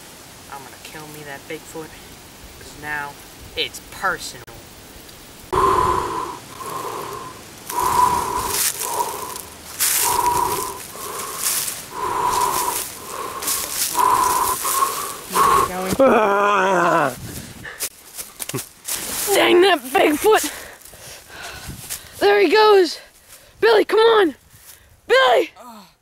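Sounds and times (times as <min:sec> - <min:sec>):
footsteps crunching dry leaves: 0:06.5 - 0:16.3, 0:16.9 - 0:22.4, 0:23.0 - 0:23.6.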